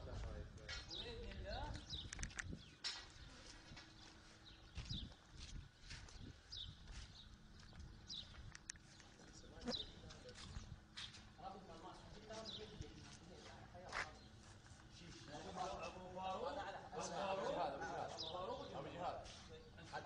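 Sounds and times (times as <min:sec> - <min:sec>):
sharp clicks: 0:01.8 - 0:03.0, 0:07.8 - 0:09.1.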